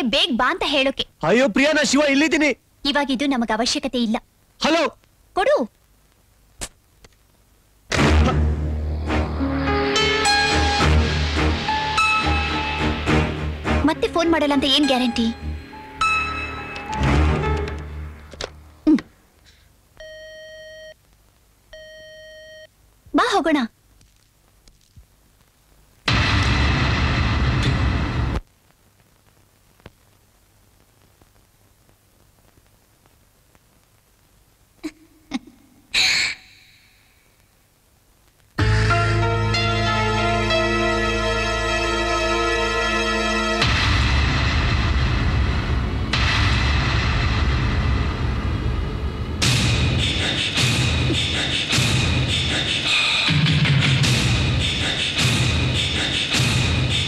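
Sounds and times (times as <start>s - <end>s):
booming hits: 7.9s - 12.1s, 26.1s - 28.4s, 43.6s - 52.3s
telephone line beep: 20.0s - 21.0s
deep rumbling film score: 43.6s - 51.1s.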